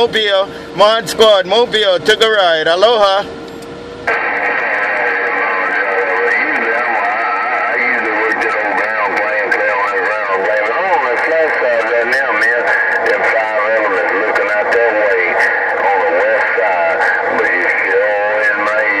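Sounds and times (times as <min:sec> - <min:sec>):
radio chatter over crackle: 0:04.1 - 0:19.0.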